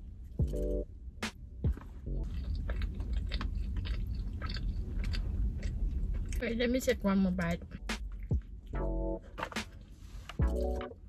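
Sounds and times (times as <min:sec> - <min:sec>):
background music: 0:00.4 - 0:02.4, 0:07.7 - 0:11.0
person chewing food: 0:01.7 - 0:06.4.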